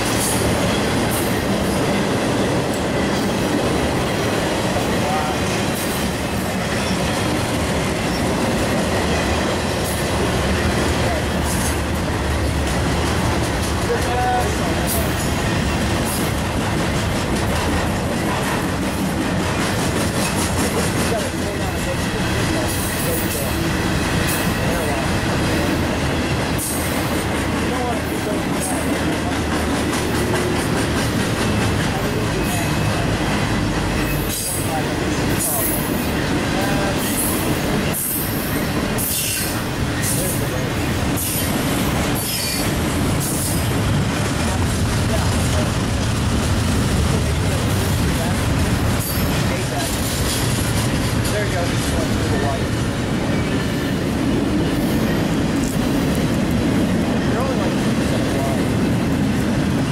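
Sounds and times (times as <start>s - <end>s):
steel wheels rumbling on rail: 0.0s - 59.9s.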